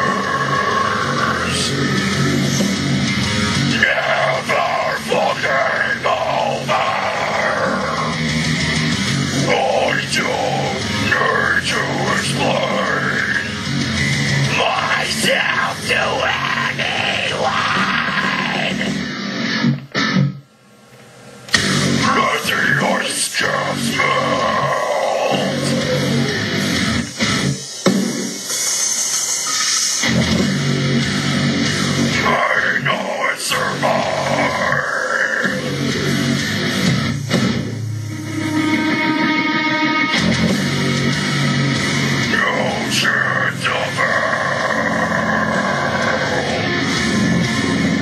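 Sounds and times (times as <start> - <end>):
harsh scream into microphone: 0.0 - 2.6, 3.5 - 8.6, 14.5 - 19.2, 21.7 - 27.0, 31.7 - 37.1, 37.7 - 48.0
heavy metal distorted guitars: 0.0 - 48.0
heavy metal music: 0.0 - 48.0.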